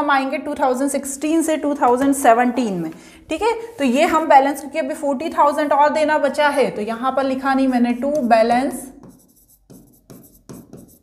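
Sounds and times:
stylus writing on screen: 8.6s - 11.0s.

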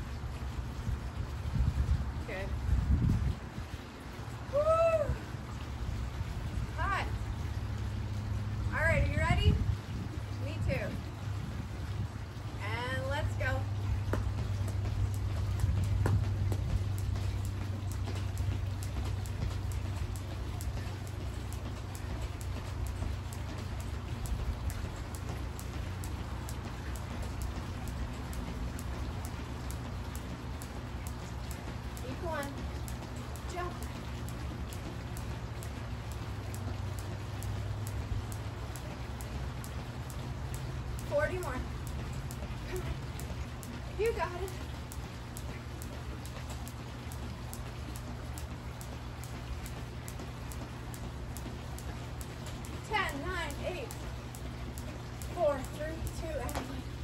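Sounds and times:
low steady hum: 0.0s - 57.0s
jump rope ticking on concrete: 5.3s - 57.0s.

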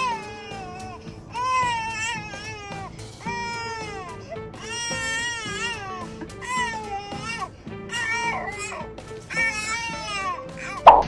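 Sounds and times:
background music: 0.0s - 11.0s.

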